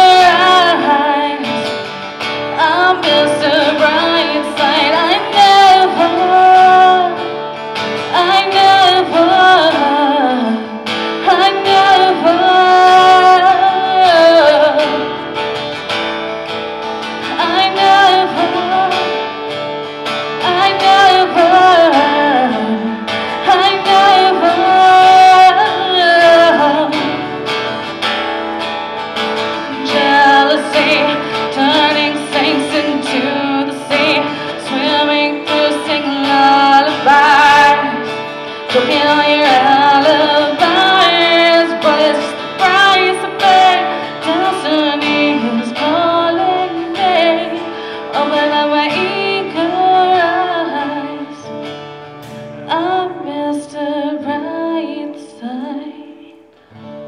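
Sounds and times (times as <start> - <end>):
woman singing: 0.0 - 15.5, 17.0 - 27.8, 29.3 - 51.6, 52.6 - 56.6
strummed acoustic guitar: 0.0 - 57.0.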